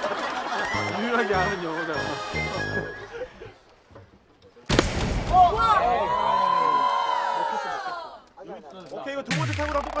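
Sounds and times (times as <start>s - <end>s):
people laughing: 0.0s - 3.7s.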